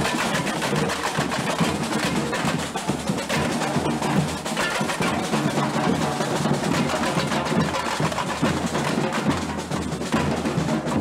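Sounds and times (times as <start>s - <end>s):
crowd: 0.0s - 11.0s
percussion band drumming: 0.0s - 11.0s.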